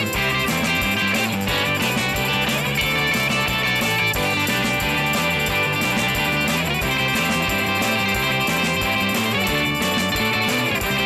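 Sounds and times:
bass guitar: 0:00.0 - 0:11.0
drums steady beat: 0:00.0 - 0:11.0
electric guitar strumming: 0:00.0 - 0:11.0.

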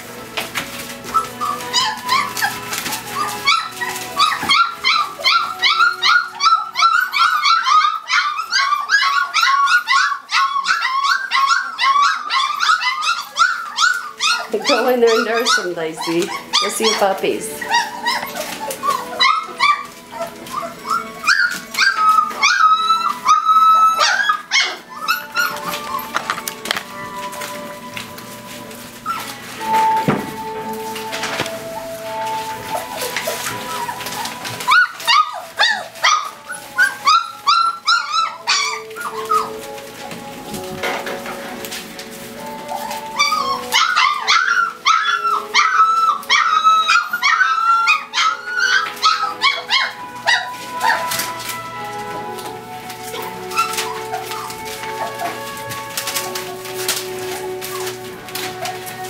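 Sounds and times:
background music: 0:00.0 - 0:59.0
puppies whining and yelping: 0:00.0 - 0:59.0.

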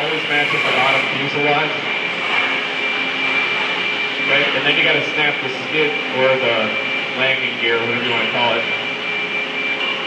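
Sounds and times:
mechanical whir: 0:00.0 - 0:07.4
high-pitched whine: 0:00.0 - 0:10.0.

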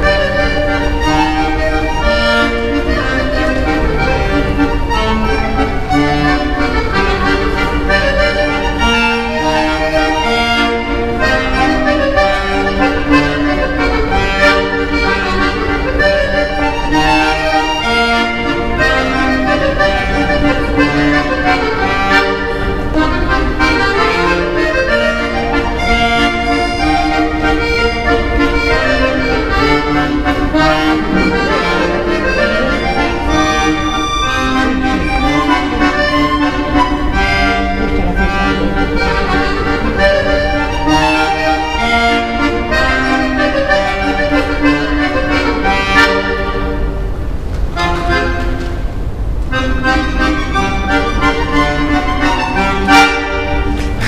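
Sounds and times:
piano accordion playing: 0:00.0 - 0:54.0.

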